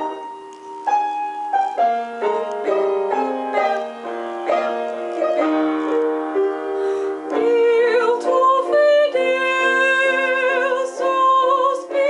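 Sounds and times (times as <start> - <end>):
slow piano piece: 0.0 - 12.0.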